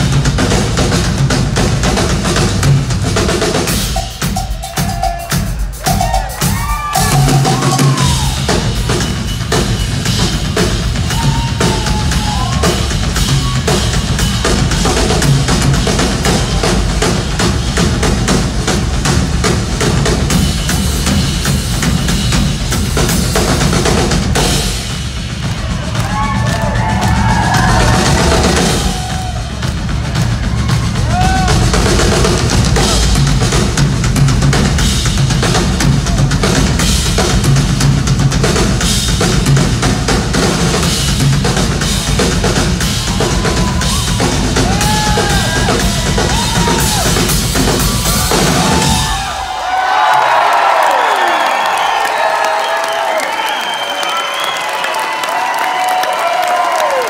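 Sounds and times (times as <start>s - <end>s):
rock drum kit solo: 0.0s - 50.8s.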